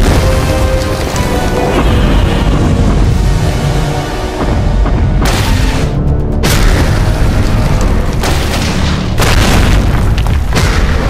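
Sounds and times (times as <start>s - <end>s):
music: 0.0s - 11.0s
booming impact hits: 4.4s - 11.0s.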